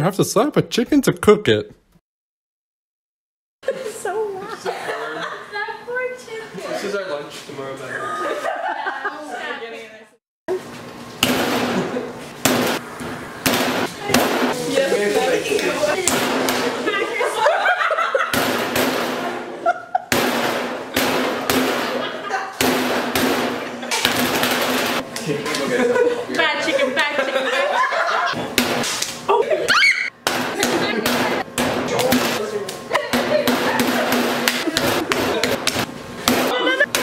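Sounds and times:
laughter: 3.6 - 5.8, 7.9 - 9.6, 16.8 - 18.4, 19.5 - 20.1, 21.8 - 22.6, 25.2 - 28.4, 32.9 - 35.7, 36.4 - 37.0.

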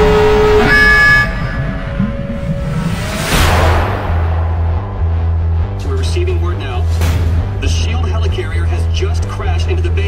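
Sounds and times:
loud horn-like blast: 0.0 - 5.8
low rumble: 0.0 - 8.4.

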